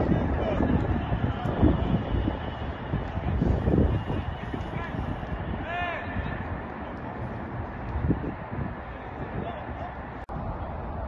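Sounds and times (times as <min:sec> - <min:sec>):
distant voices of players: 0:00.0 - 0:11.0.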